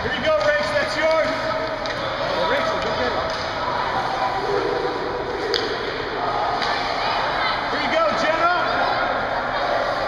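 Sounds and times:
steady hall noise: 0.0 - 10.0
hockey sticks and puck knocking: 0.1 - 3.6.

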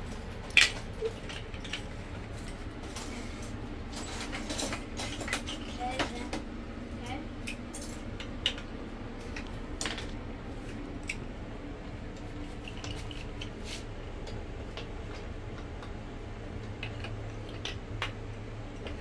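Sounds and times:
plastic bricks clicking and clattering: 0.4 - 2.2, 4.0 - 6.4, 7.4 - 8.7, 9.4 - 10.2, 16.6 - 19.0.

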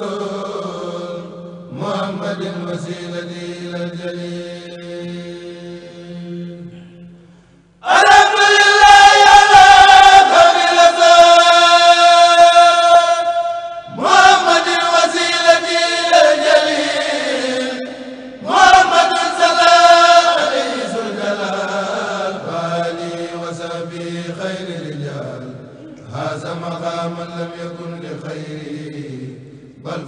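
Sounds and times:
men chanting a cappella: 0.0 - 7.1, 7.8 - 30.0.

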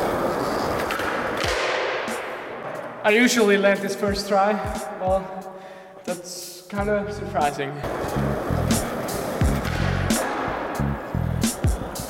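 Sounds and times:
skateboard wheels rolling on concrete: 0.0 - 1.9, 7.8 - 12.0
skateboard landing thud: 0.8 - 2.1.

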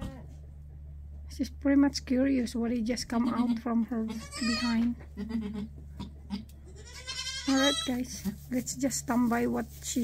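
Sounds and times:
steady low hum: 0.0 - 10.0
goat calling softly: 3.3 - 8.0.

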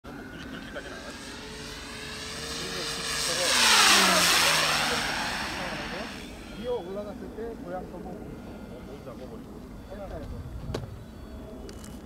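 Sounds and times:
model plane motor and propeller: 0.1 - 12.0.

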